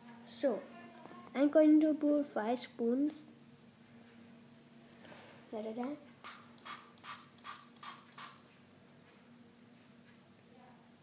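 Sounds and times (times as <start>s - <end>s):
spray pump hissing bursts: 6.2s - 8.4s.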